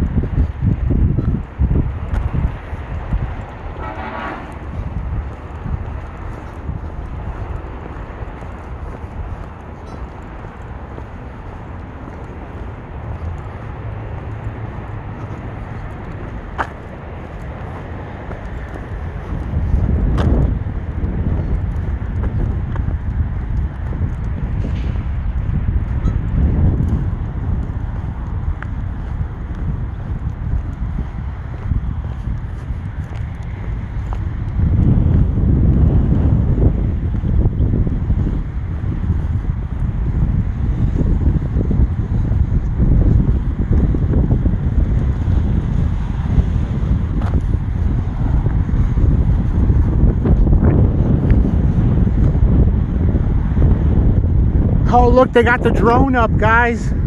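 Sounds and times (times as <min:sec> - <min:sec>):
wind buffeting microphone: 0:00.0 - 0:57.0
brief honk: 0:03.7 - 0:04.9.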